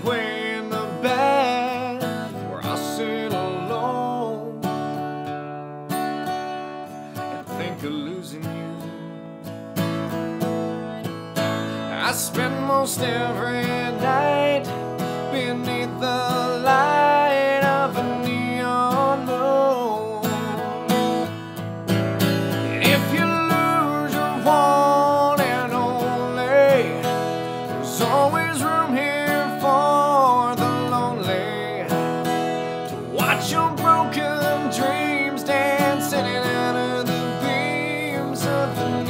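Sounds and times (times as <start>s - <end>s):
man singing country ballad: 0.0s - 5.4s, 6.8s - 39.0s
strummed acoustic guitar: 0.0s - 39.0s.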